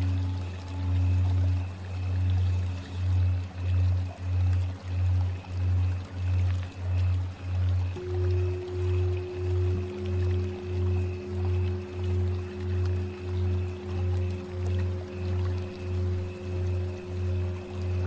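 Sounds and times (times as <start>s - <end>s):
higher held tone: 0.0s - 2.7s, 8.0s - 18.0s
low pulsing drone: 0.0s - 18.0s
meditative ambient music: 0.0s - 18.0s.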